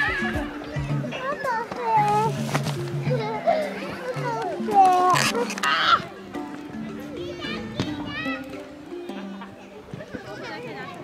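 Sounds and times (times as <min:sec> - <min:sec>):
children's voices: 0:00.0 - 0:11.0.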